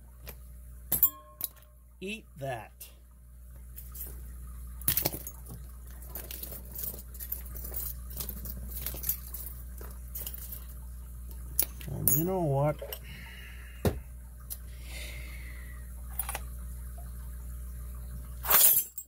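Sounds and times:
man's wavering voice: 11.9 - 13.0.

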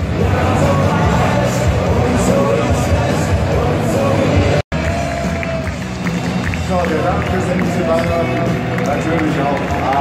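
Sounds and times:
music in arena: 0.0 - 10.0
stadium crowd noise: 0.0 - 10.0.

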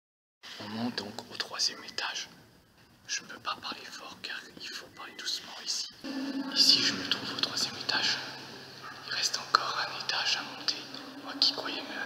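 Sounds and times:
faint low hum: 0.5 - 12.0
person whispering: 0.6 - 2.3, 3.1 - 12.0.

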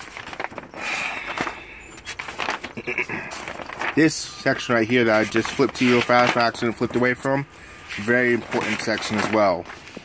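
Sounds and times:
paper pages flipping: 0.0 - 10.0.

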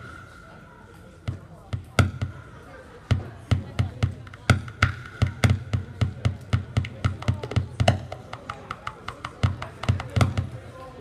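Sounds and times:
faint steady high tone: 0.0 - 1.2.

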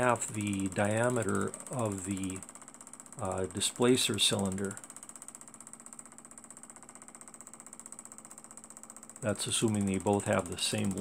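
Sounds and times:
stirling engine ticking: 0.0 - 11.0.

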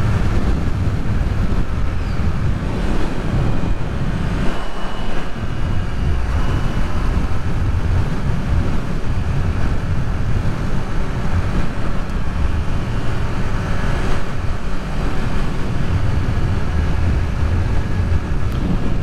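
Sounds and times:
motorcycle engine running: 0.0 - 19.0
wind buffeting microphone: 0.0 - 19.0.

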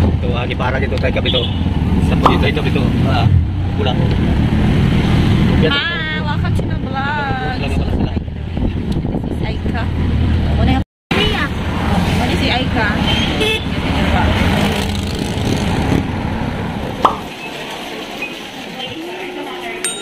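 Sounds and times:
vehicle engine and road noise: 0.0 - 19.0
voices: 5.6 - 9.9, 10.5 - 14.8, 16.7 - 20.0.

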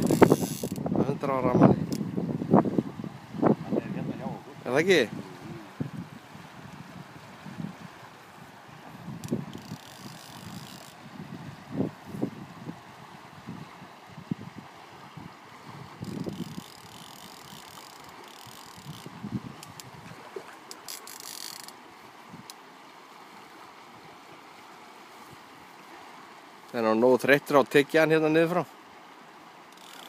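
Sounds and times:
wind buffeting microphone: 0.0 - 17.7, 18.5 - 20.4
fast-flowing river: 0.0 - 30.0.

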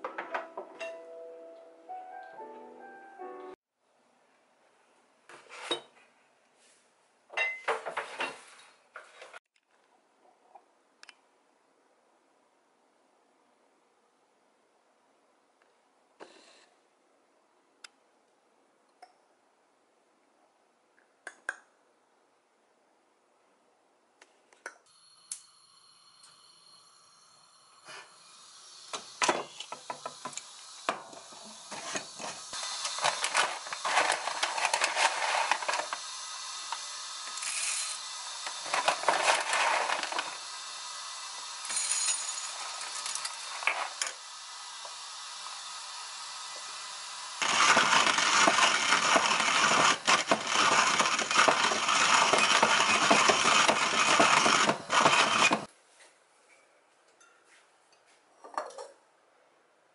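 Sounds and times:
hand coffee grinder grinding: 28.9 - 45.0, 47.4 - 55.7
coffee beans rattling into grinder: 31.7 - 44.2, 47.4 - 55.7
paper bag rustling: 32.6 - 36.0, 38.6 - 40.3.

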